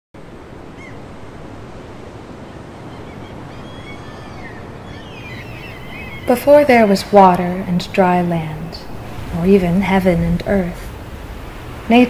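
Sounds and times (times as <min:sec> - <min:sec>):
ocean surf on a beach: 0:00.2 - 0:12.0
faint bird chirps: 0:02.4 - 0:06.9.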